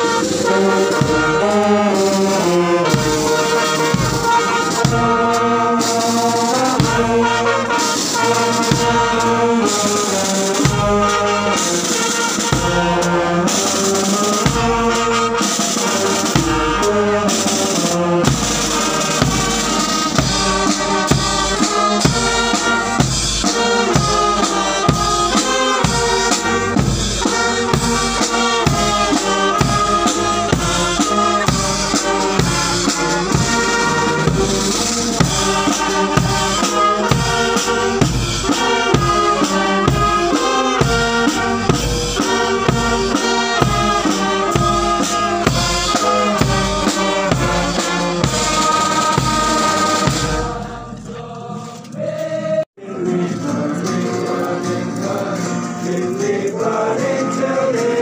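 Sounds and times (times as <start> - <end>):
snare drums: 0.0 - 52.6
brass instruments playing tune: 0.0 - 58.0.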